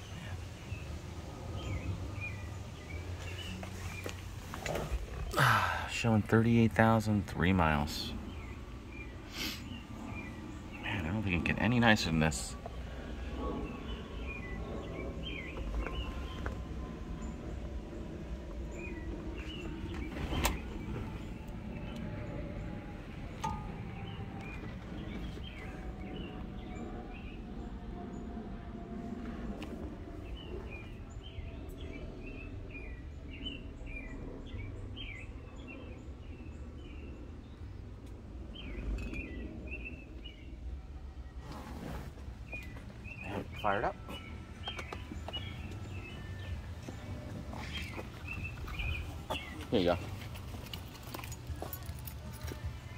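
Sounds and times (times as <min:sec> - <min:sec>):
small birds chirping: 0:00.0 - 0:28.4, 0:29.4 - 0:52.9
steady low rumble: 0:00.0 - 0:52.9.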